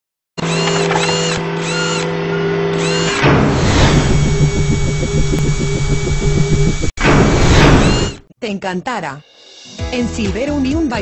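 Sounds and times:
buzzing synth drone: 0.4 - 8.3
rhythmic buzzing pulse: 2.9 - 8.2
whoosh: 3.3 - 8.2
synthetic sweep: 3.4 - 8.2.

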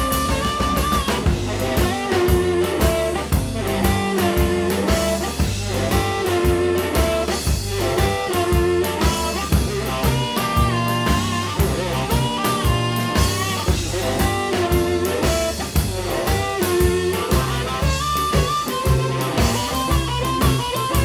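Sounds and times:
electric blues band instrumental: 0.0 - 21.0.

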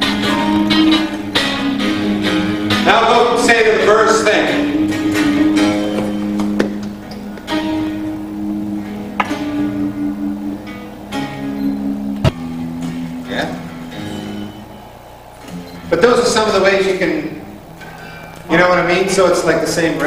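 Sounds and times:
electric guitar riff: 0.0 - 20.0.

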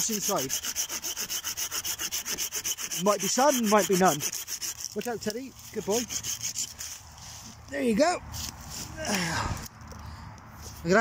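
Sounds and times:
pruning saw cutting wood: 0.0 - 7.6.

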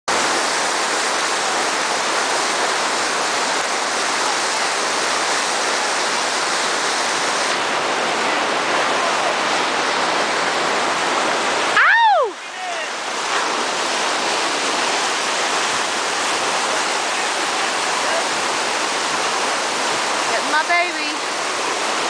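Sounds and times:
rushing whitewater: 0.1 - 22.0
person shouting: 11.8 - 12.9.

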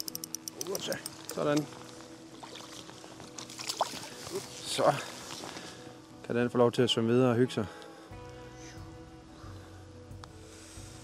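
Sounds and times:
water sloshing and dripping: 1.5 - 5.6.

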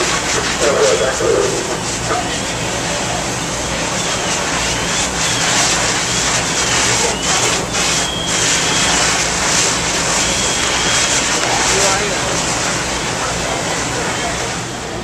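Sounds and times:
fire engine pumps running: 0.0 - 15.0
faint high whistling tones: 3.4 - 9.2, 10.2 - 11.3.

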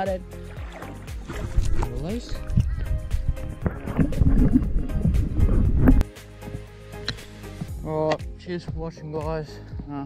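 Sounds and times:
water churning and sloshing: 0.0 - 6.1
background music: 0.0 - 10.0.

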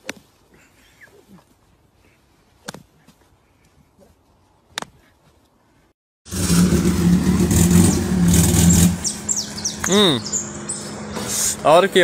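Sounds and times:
car engine revving hard: 6.3 - 11.7.

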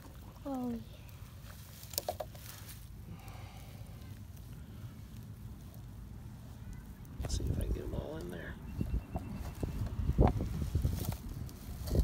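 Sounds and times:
mesh net rustling: 0.0 - 8.4
wind on microphone: 7.2 - 12.0.

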